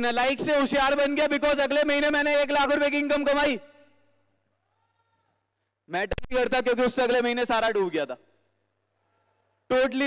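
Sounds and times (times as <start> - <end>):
man's amplified speech: 0.0 - 3.9, 5.9 - 8.3, 9.6 - 10.0.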